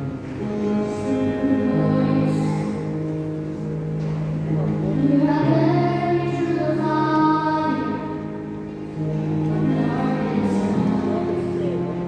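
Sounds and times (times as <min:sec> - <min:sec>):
slow worship backing music: 0:00.0 - 0:12.0
person singing: 0:00.4 - 0:03.0, 0:04.7 - 0:08.4, 0:09.5 - 0:12.0.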